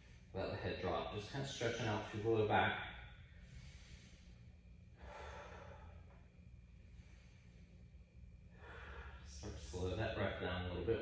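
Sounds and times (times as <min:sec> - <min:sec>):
slow human breathing: 0:00.0 - 0:00.4, 0:03.1 - 0:09.8.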